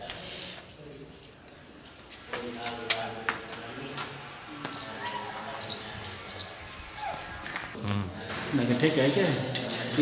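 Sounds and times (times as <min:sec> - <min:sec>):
footsteps on concrete floor: 0:01.8 - 0:08.8.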